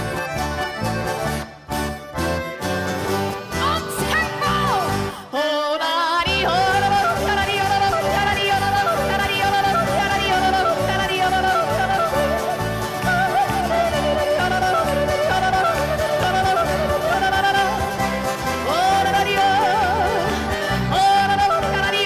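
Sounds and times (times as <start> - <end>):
band accompaniment with bass beat: 0.0 - 5.2, 6.3 - 22.0
woman yodeling: 3.6 - 18.0, 18.6 - 22.0.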